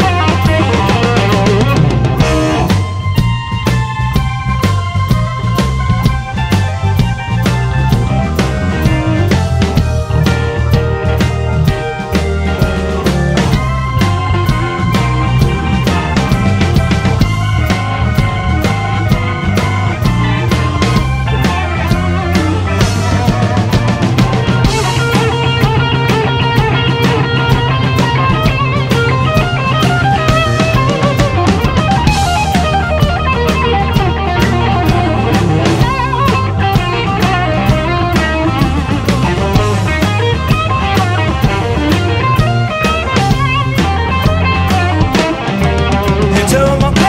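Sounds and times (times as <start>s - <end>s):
bass line: 0.0s - 47.0s
drum beat: 0.0s - 47.0s
electric guitar solo: 0.0s - 47.0s.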